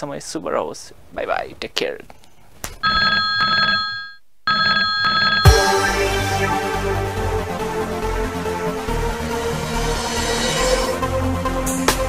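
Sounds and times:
telephone ringing: 0:02.8 - 0:05.6
electronic music with bass: 0:05.4 - 0:12.0.

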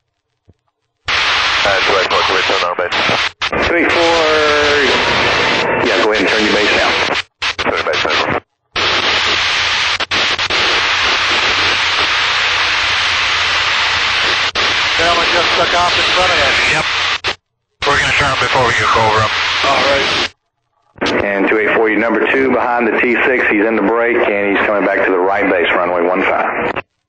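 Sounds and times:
loud steady radio hiss: 0:01.1 - 0:20.4, 0:21.0 - 0:26.9
garbled radio voice: 0:01.6 - 0:09.4, 0:14.2 - 0:20.3, 0:21.0 - 0:26.8.

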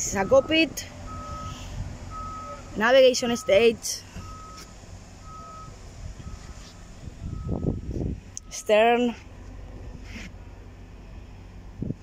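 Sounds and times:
vehicle reversing alarm beeping: 0:00.0 - 0:09.2
low background rumble: 0:00.0 - 0:12.0.

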